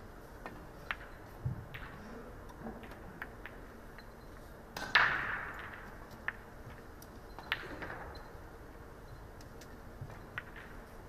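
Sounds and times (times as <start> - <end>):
pool balls clicking: 0.3 - 11.0.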